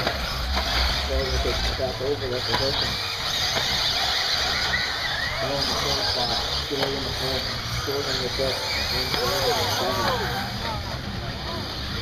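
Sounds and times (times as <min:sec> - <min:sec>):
radio-controlled cars whining: 0:00.0 - 0:12.0.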